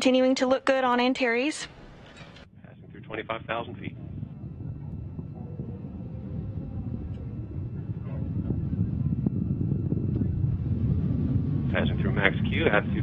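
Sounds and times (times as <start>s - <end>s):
rocket engines rumbling: 1.4s - 13.0s.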